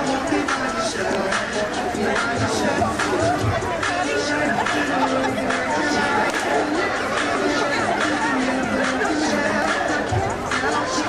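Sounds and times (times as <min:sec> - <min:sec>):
crowd chattering: 0:00.0 - 0:11.0
dance music playing: 0:00.0 - 0:11.0.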